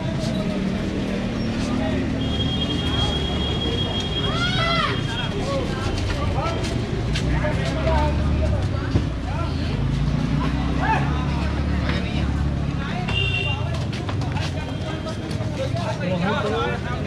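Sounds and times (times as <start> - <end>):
passers-by talking: 0.0 - 17.0.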